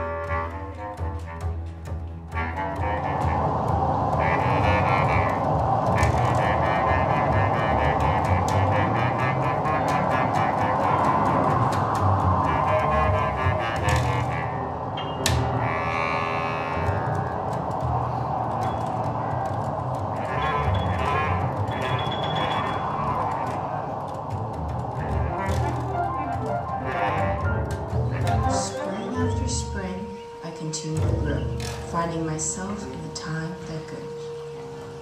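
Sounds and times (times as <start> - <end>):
double bass: 0.0 - 30.0, 30.8 - 32.7
clarinet: 0.0 - 35.0
piano: 0.0 - 35.0
high pitched bursts: 3.3 - 30.6.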